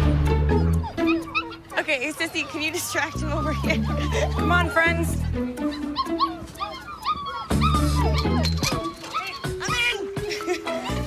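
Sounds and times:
background music: 0.0s - 11.0s
puppies yipping and whining: 0.4s - 11.0s.

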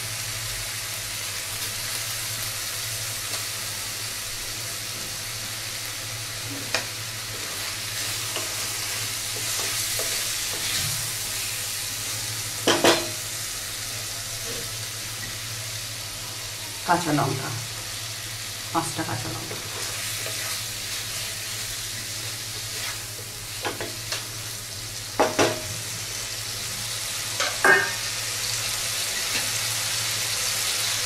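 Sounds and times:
onions sizzling in hot oil: 0.0s - 31.0s.

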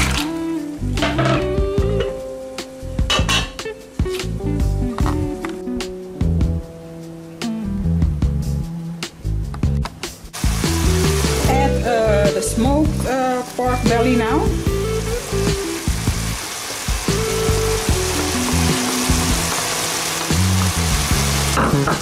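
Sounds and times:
background music with held notes: 0.0s - 22.0s
food sizzling in a pan: 10.4s - 22.0s.

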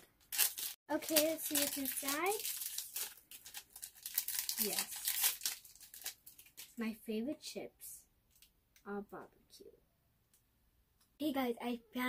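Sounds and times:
foil packet crinkling and tearing: 0.0s - 6.8s.

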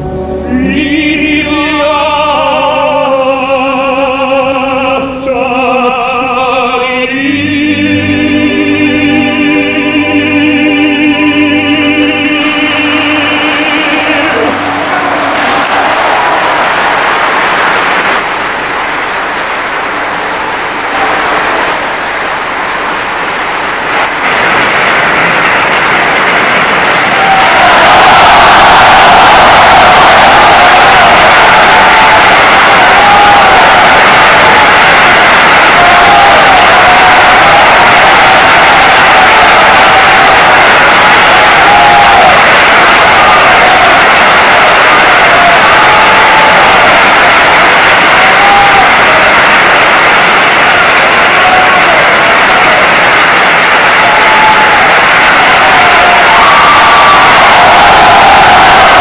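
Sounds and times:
applause and cheering: 12.0s - 59.0s.

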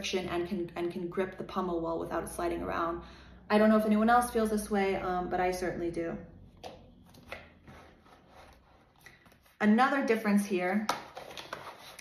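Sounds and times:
glove rubbing: 7.0s - 9.6s.

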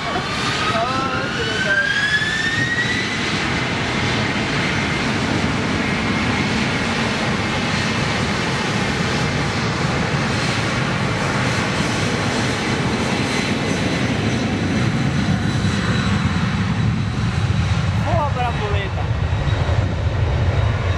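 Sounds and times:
jet engines at takeoff: 0.0s - 20.9s.

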